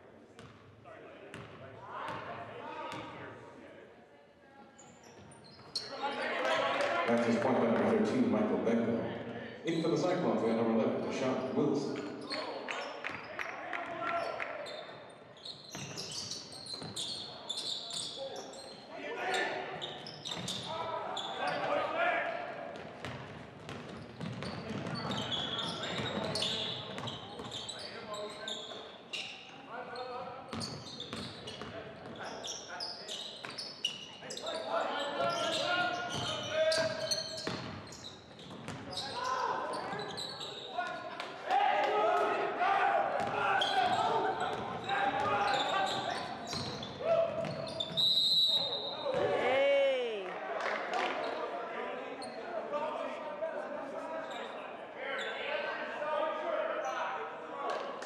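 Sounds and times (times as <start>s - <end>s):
sneakers squeaking: 0.4s - 0.7s, 4.8s - 6.4s, 14.2s - 21.9s, 22.8s - 41.2s, 43.2s - 49.4s, 52.2s - 52.4s
players shouting: 40.9s - 47.8s
referee's whistle: 45.4s - 49.2s.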